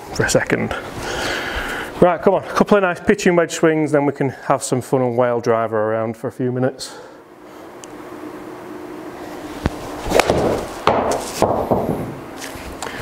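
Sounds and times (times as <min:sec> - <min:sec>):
ball thumping on screen: 0:09.7 - 0:12.2.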